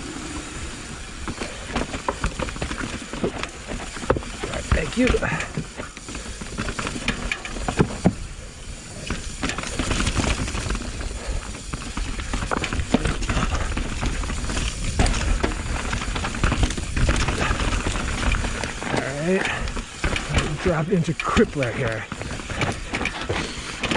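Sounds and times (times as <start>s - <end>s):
bike tyres on dirt trail: 0.0s - 23.9s
bike knocking and rattling: 0.3s - 23.9s.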